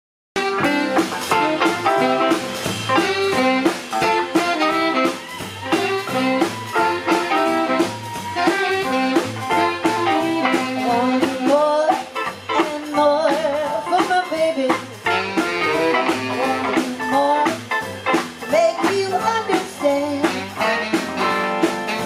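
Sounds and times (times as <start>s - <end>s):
drum kit: 0.4s - 22.0s
electric guitar: 0.4s - 22.0s
saxophone: 0.4s - 22.0s
walking bass line: 0.4s - 22.0s.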